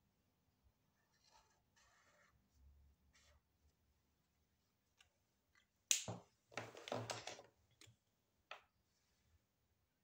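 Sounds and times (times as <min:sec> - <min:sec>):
marker scratching on paper: 0:01.2 - 0:02.4.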